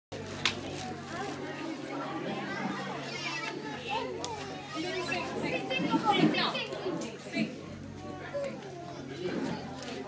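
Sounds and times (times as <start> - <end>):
adults and children chattering: 0.1 - 10.0.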